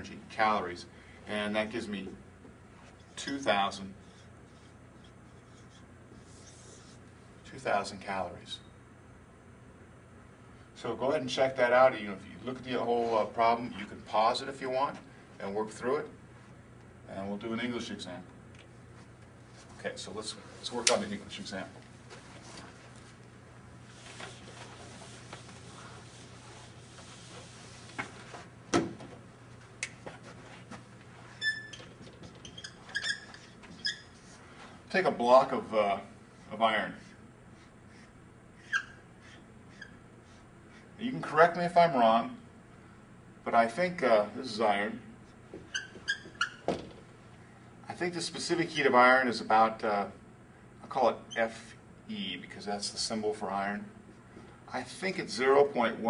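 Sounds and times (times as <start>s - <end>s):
marker scratching on whiteboard: 4.0s - 7.0s, 32.5s - 34.4s
marker squeaking on whiteboard: 4.0s - 7.0s, 31.3s - 34.4s, 37.0s - 40.9s, 45.5s - 46.7s.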